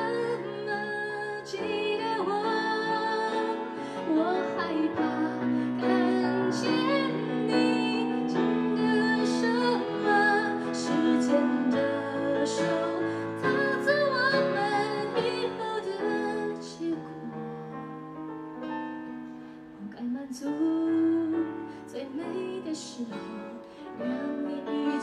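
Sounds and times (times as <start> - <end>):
woman singing a ballad: 0.0 - 17.9, 19.8 - 25.0
acoustic guitar: 0.0 - 25.0
keyboard: 0.0 - 25.0.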